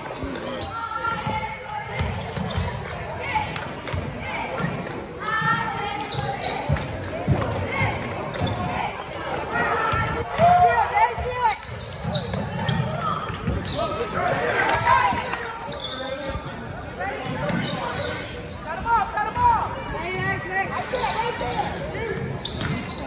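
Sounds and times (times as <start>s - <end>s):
basketball bouncing on court: 1.0s - 8.8s, 9.4s - 16.6s.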